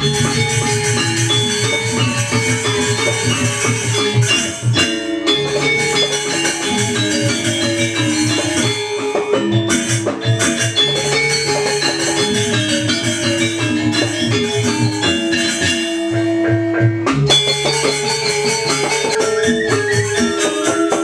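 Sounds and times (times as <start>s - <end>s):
gamelan metallophones ringing: 0.0s - 21.0s.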